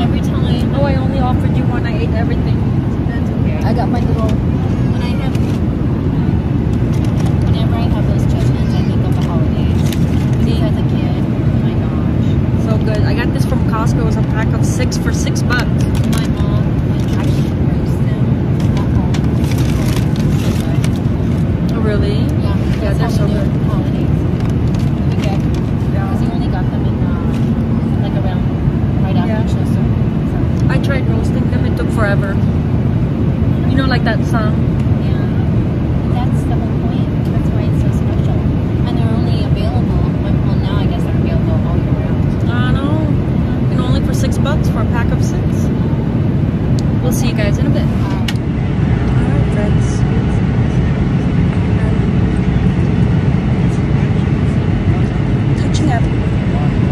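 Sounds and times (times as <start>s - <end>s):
airliner cabin rumble: 0.0s - 56.9s.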